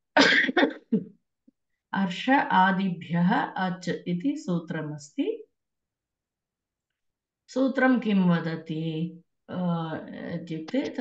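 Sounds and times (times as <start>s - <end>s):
person coughing: 0.1s - 1.0s.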